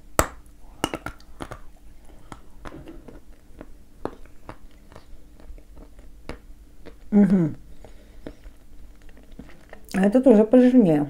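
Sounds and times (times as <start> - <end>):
clay bitten with sharp crack: 0.1 - 7.0
crunching and chewing: 0.4 - 10.0.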